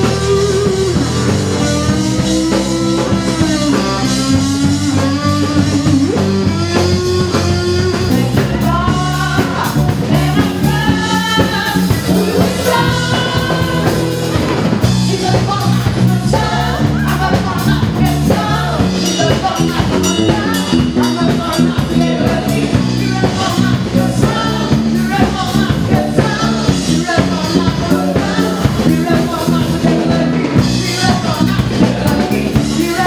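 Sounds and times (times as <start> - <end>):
drum kit: 0.0 - 33.0
electric bass line: 0.0 - 33.0
live rock band playing: 0.0 - 33.0
woman singing into a microphone: 0.0 - 33.0
electric guitar sustained notes: 10.8 - 15.1.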